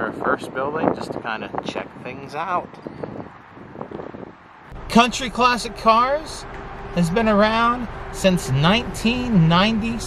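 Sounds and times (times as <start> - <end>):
faint outdoor background noise: 0.0 - 10.0
man's voice: 4.8 - 6.4, 7.0 - 10.0.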